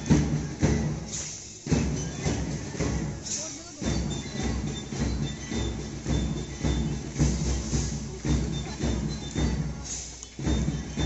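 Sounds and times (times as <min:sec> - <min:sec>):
bass drum beat: 0:00.0 - 0:11.0
march music: 0:00.0 - 0:11.0
outdoor crowd noise: 0:00.0 - 0:11.0.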